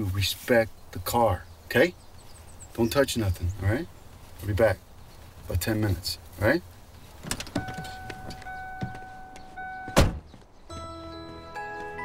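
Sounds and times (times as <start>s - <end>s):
soft knocks of movement: 6.7s - 9.6s
car door slamming: 7.2s - 10.4s
car warning tone: 7.5s - 12.0s.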